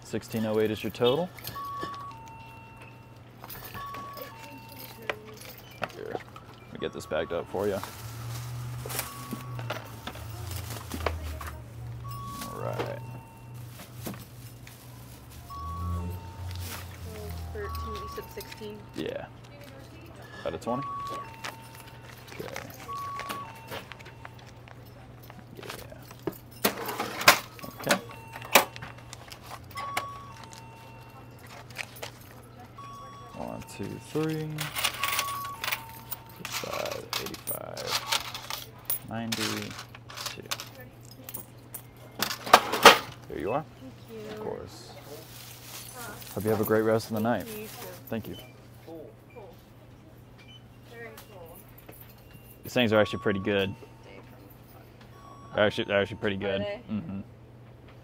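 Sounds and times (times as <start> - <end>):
coins clinking at register: 0.1 - 44.6, 45.4 - 48.6, 50.3 - 56.6
quiet background music: 0.1 - 57.0
glass bottles clinking: 0.4 - 14.3
plastic bag rustling: 7.1 - 18.8, 45.0 - 48.2.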